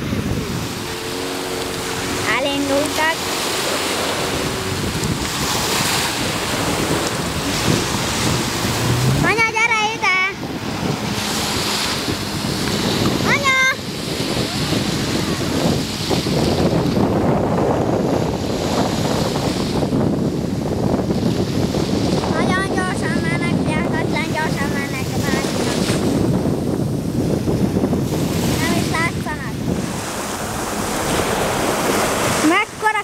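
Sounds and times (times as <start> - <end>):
jet ski engine running: 0.0 - 33.0
waves washing in: 0.0 - 33.0
wind buffeting microphone: 0.0 - 33.0.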